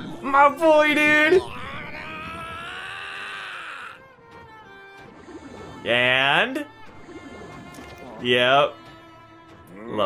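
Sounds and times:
man yelling: 0:00.2 - 0:04.0
faint background music: 0:04.4 - 0:10.0.

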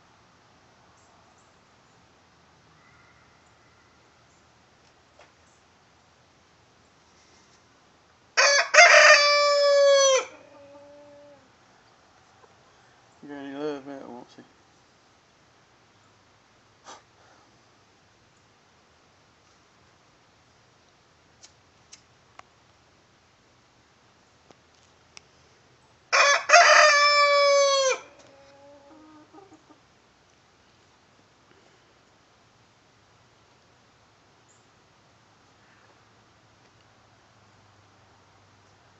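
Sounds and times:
fainter lower bird calls: 0:02.7 - 0:04.6, 0:34.4 - 0:34.8
rooster crowing: 0:08.4 - 0:11.4, 0:26.1 - 0:29.6.

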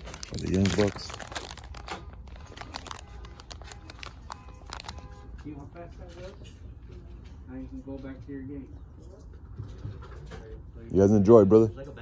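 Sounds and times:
plastic packaging crinkling: 0:00.0 - 0:05.4.

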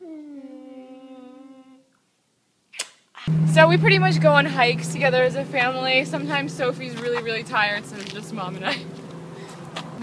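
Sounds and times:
woman humming: 0:00.0 - 0:01.9.

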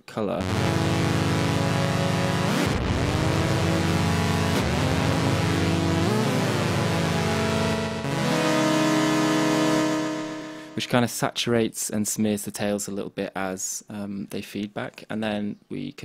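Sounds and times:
synth chords with delay: 0:00.4 - 0:11.0.

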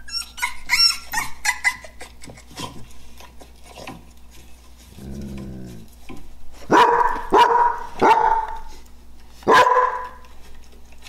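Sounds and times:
dog growling: 0:04.9 - 0:06.0
dog barking: 0:06.7 - 0:08.7, 0:09.4 - 0:10.2.

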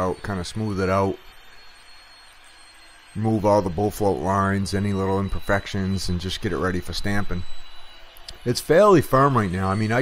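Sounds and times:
man narrating: 0:00.0 - 0:01.2, 0:03.2 - 0:07.5, 0:08.3 - 0:10.0.

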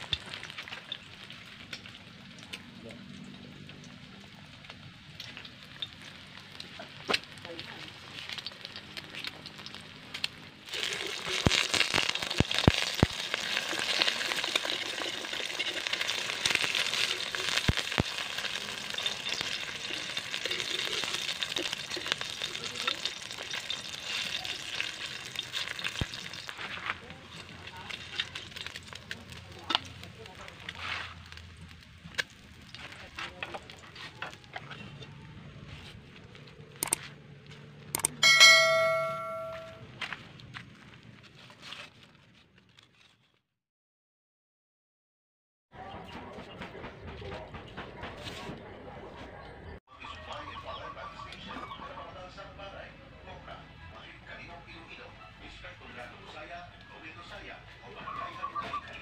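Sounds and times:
egg sizzling in hot oil: 0:00.0 - 0:02.7, 0:03.6 - 0:33.0
bright bell ding: 0:38.0 - 0:39.8.

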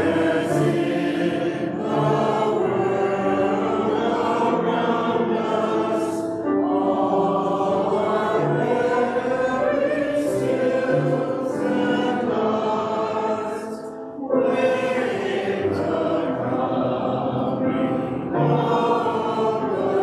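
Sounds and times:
choir singing a hymn: 0:00.0 - 0:20.0
grand piano accompaniment: 0:00.0 - 0:20.0.

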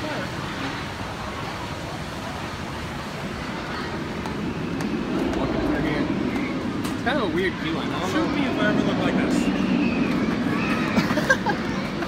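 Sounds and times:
rushing water: 0:00.0 - 0:12.0.

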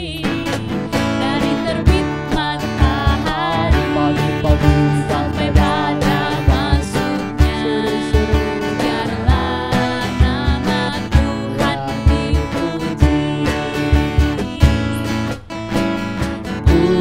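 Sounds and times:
woman singing into a microphone: 0:00.0 - 0:15.4, 0:16.4 - 0:17.0
strummed acoustic guitar: 0:00.0 - 0:17.0
steady low beat: 0:03.7 - 0:07.6.

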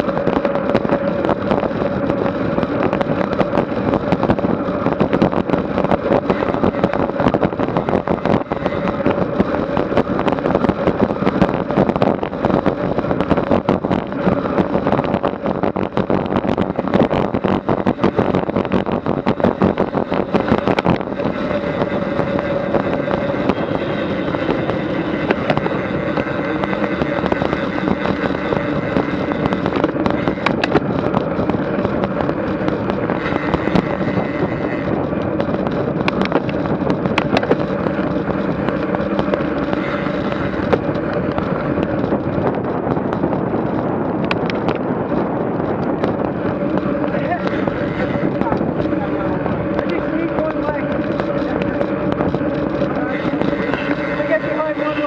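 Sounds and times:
bicycle clicks and rattles: 0:00.0 - 0:55.0
constant hum: 0:00.0 - 0:55.0
wind and road rush: 0:00.0 - 0:55.0.

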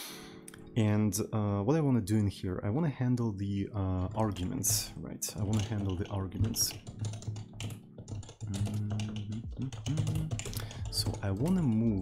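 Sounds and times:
keyboard typing clicks: 0:04.0 - 0:12.0.

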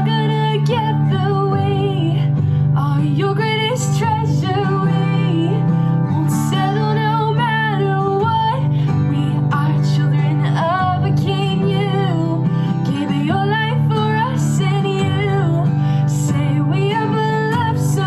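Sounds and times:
acoustic guitar strumming: 0:00.0 - 0:18.0
woman singing: 0:00.0 - 0:18.0.

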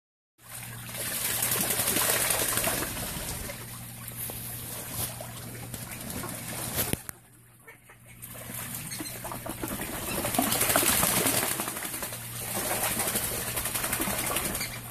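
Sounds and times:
ducks splashing in water: 0:00.4 - 0:14.9
faint low hum: 0:00.4 - 0:14.9.

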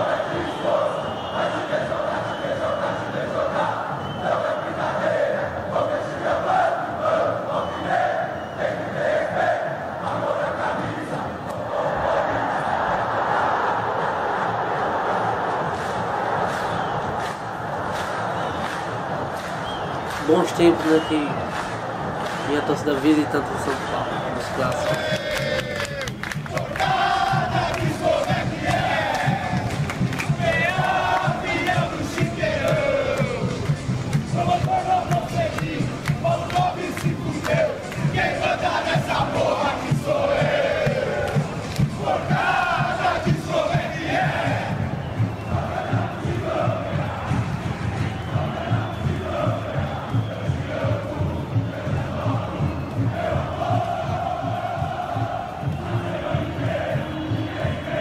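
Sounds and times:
crowd chanting: 0:00.0 - 0:58.0
steady low beat: 0:26.1 - 0:58.0.

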